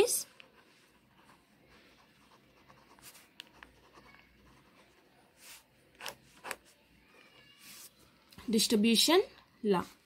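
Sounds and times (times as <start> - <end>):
pen scratching on paper: 0.3 - 6.7.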